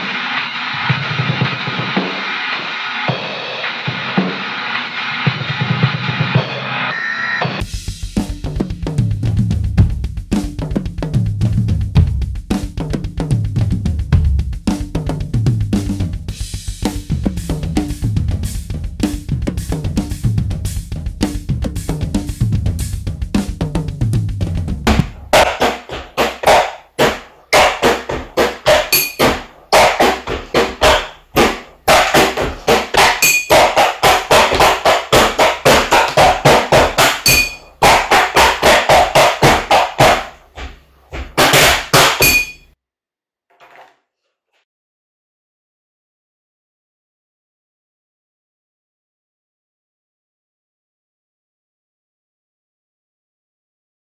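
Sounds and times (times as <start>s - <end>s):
drum kit groove: 0.0s - 42.6s
sticks drumming on pot and box: 23.4s - 42.6s.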